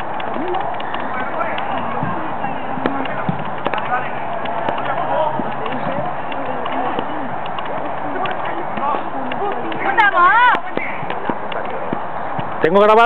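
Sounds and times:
players calling in distance: 0.0 - 13.0
steady background noise: 0.0 - 13.0.

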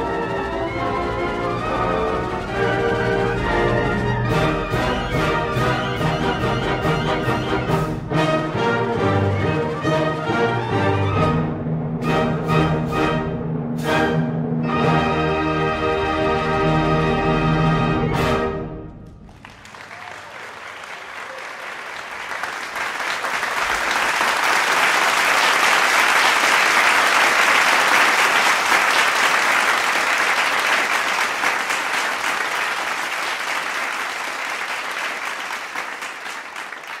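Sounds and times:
audience applauding: 19.2 - 37.0.

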